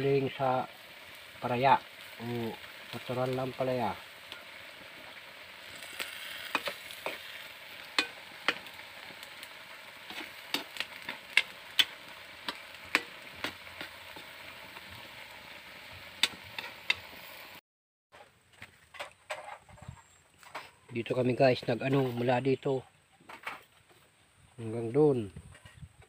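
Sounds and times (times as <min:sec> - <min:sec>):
pan of food sizzling: 0:00.0 - 0:17.6
utensil tapping metal pan: 0:07.9 - 0:08.7, 0:10.1 - 0:14.3.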